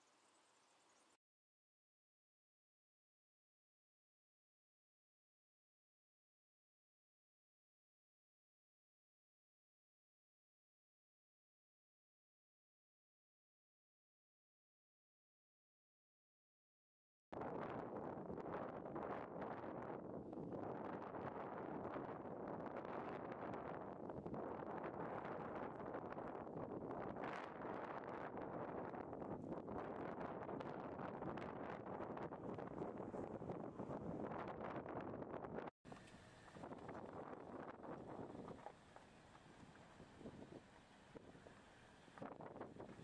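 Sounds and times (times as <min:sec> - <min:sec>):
wind buffeting microphone: 0:17.4 - 0:41.6, 0:42.2 - 0:43.0.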